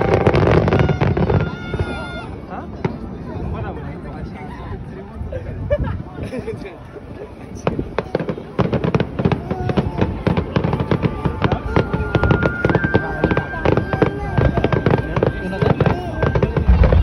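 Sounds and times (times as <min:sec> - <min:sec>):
fireworks crackling and popping: 0:00.0 - 0:03.0, 0:07.5 - 0:17.0
deep firework boom: 0:08.6 - 0:17.0
high firework whistle: 0:10.6 - 0:17.0.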